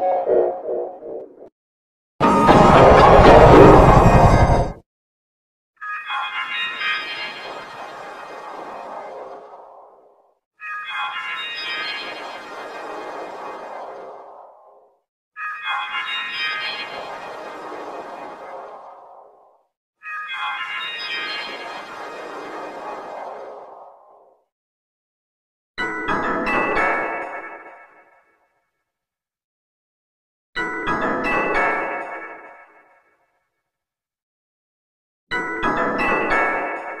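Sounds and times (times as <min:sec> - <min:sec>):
chime-like electronic jingle: 0:02.2 - 0:04.7, 0:05.8 - 0:08.5, 0:10.6 - 0:12.6, 0:15.4 - 0:17.9, 0:20.0 - 0:22.4.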